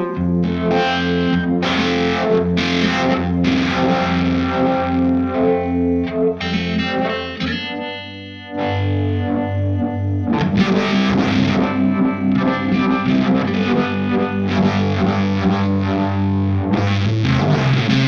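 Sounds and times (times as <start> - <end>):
electric guitar with vibe pedal: 0.0 - 18.0.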